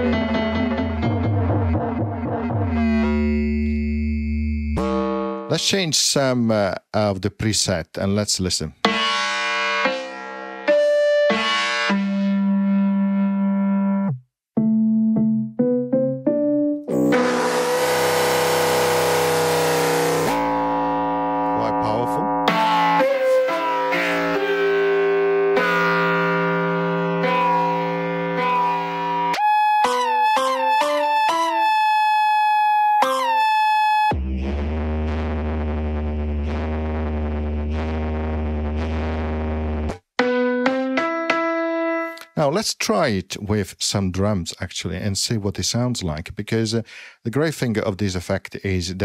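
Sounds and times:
resonant synth keyboard tones: 0:00.0 - 0:05.5, 0:08.8 - 0:34.5, 0:40.2 - 0:42.2
deep low tone: 0:00.9 - 0:05.1, 0:16.9 - 0:22.6, 0:34.1 - 0:40.0.

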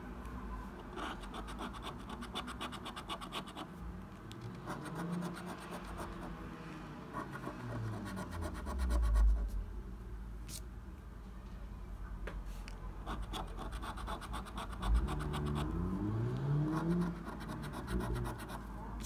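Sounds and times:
coin scratching a scratch card: 0:00.9 - 0:03.7, 0:04.6 - 0:06.3, 0:13.1 - 0:15.8, 0:16.7 - 0:18.6.

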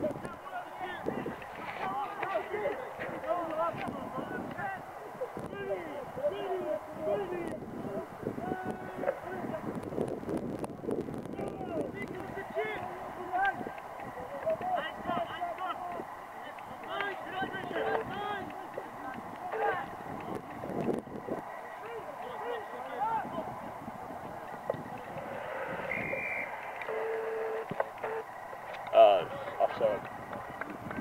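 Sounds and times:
distant crowd shouting: 0:00.0 - 0:09.7, 0:11.4 - 0:31.0.

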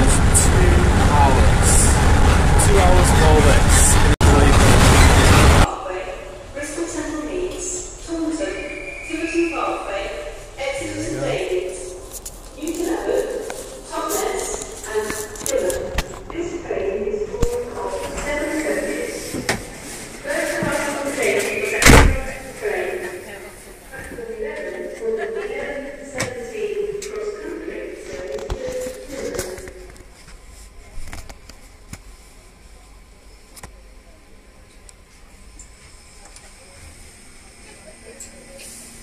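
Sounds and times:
passengers talking: 0:00.0 - 0:39.0.

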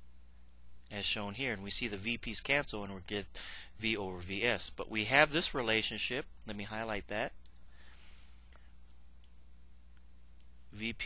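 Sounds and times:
low electrical hum: 0:00.0 - 0:11.0
man talking: 0:00.9 - 0:07.4, 0:10.7 - 0:11.0.

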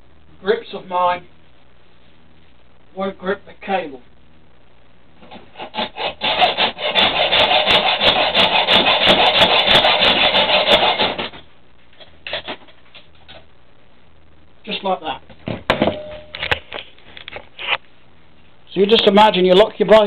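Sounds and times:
hacksaw sawing through cable: 0:05.3 - 0:11.4.

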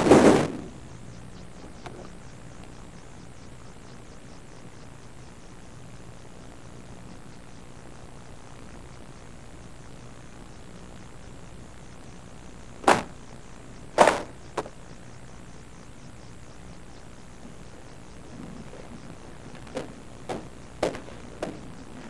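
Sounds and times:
tape hiss: 0:00.0 - 0:22.0.

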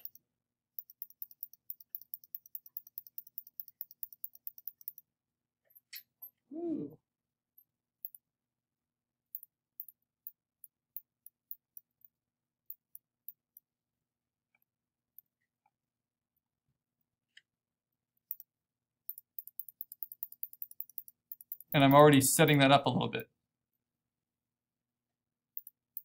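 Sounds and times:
computer mouse clicks: 0:00.0 - 0:00.2, 0:00.8 - 0:05.0, 0:19.1 - 0:21.8
person humming: 0:06.5 - 0:07.0.

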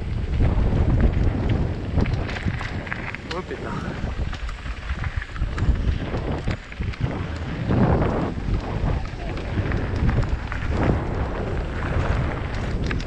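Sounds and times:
bike knocking and rattling: 0:00.0 - 0:13.0
bike tyres rumbling on gravel: 0:00.0 - 0:13.0
wind on microphone: 0:00.0 - 0:13.0.

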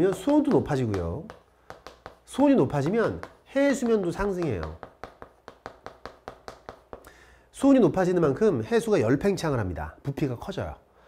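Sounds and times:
chalk tapping on chalkboard: 0:00.0 - 0:07.2.

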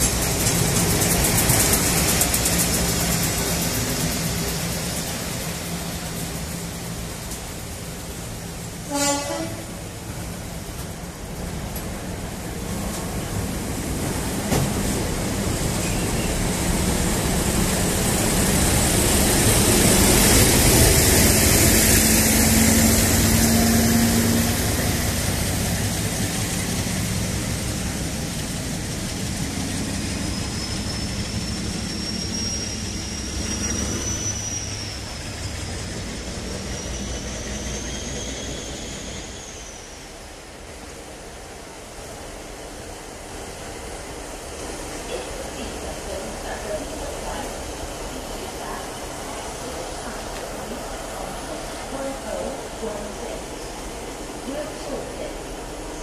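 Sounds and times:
diesel locomotive engine: 0:00.0 - 0:56.0.

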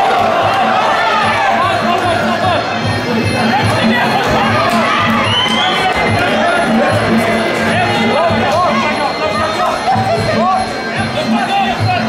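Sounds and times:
loud music with steady beat: 0:00.0 - 0:12.0
spectators shouting and cheering: 0:00.0 - 0:12.0.

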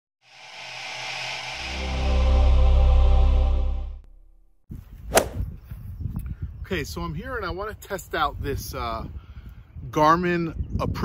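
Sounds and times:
intro music: 0:01.6 - 0:04.5
sharp short sound: 0:05.1 - 0:05.5.

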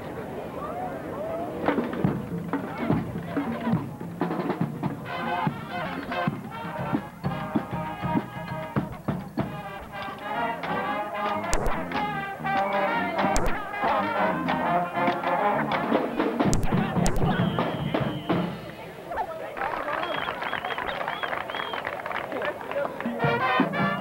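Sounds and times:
crowd voices: 0:00.0 - 0:24.0
marching band drums: 0:01.6 - 0:18.7, 0:23.2 - 0:24.0
marching band horns: 0:01.6 - 0:18.8, 0:23.0 - 0:24.0.

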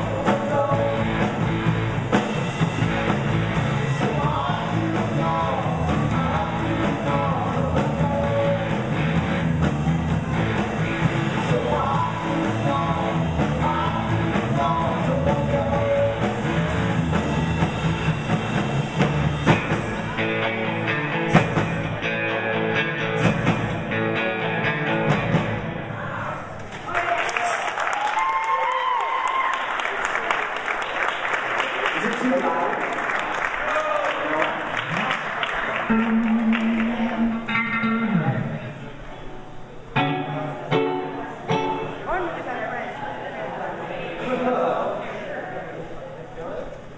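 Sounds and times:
live rock band playing: 0:00.0 - 0:26.1, 0:35.7 - 0:42.1
audience applauding: 0:26.6 - 0:37.6.

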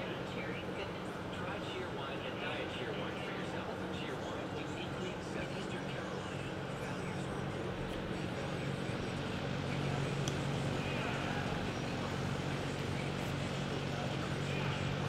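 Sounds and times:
faint voices: 0:00.0 - 0:15.0
low hum of indoor arena: 0:00.0 - 0:15.0.

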